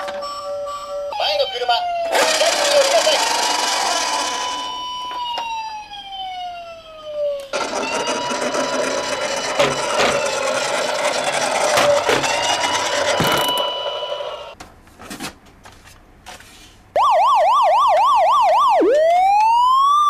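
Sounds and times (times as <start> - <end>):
toy police siren wailing: 0.4 - 14.6, 17.0 - 20.0
toy car rushing noise and knocks: 2.1 - 4.8, 7.5 - 14.5.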